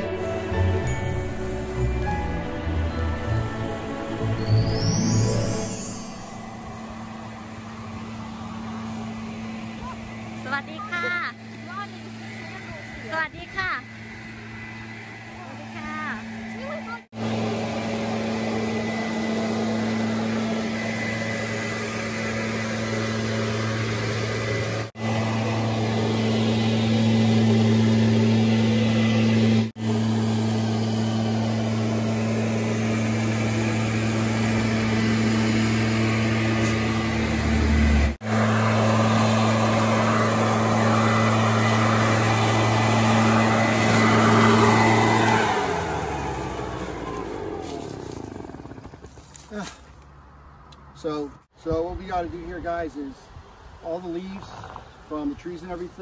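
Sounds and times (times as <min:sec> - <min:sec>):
leaf blower engine running: 0:00.0 - 0:51.5.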